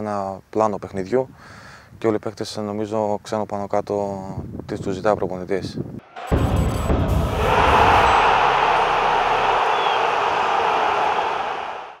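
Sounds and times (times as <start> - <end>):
deep low hit: 6.2 - 9.7.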